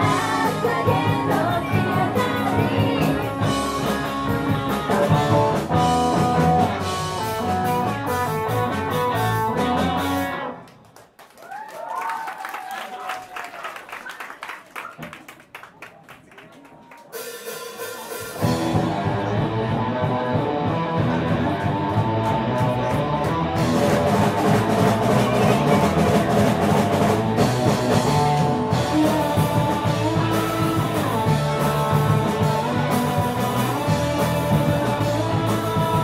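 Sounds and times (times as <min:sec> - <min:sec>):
drum kit: 0:00.0 - 0:10.5, 0:17.0 - 0:36.0
bass guitar: 0:00.0 - 0:10.7, 0:18.4 - 0:36.0
electric guitar: 0:00.0 - 0:10.8, 0:18.4 - 0:36.0.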